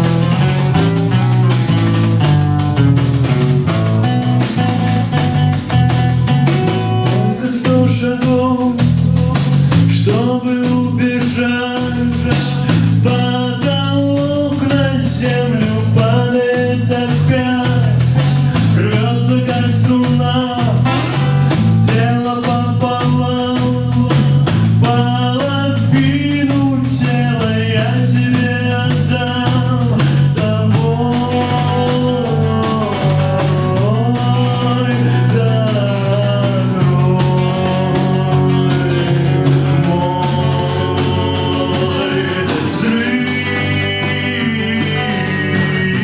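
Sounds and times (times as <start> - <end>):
drums: 0.0 - 46.0
electric bass guitar: 0.0 - 46.0
guitar: 0.0 - 46.0
male lead vocal: 6.3 - 46.0.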